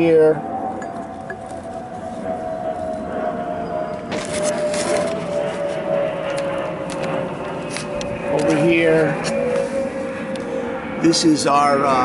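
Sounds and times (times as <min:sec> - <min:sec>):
high hum drifting lower: 0:00.0 - 0:12.0.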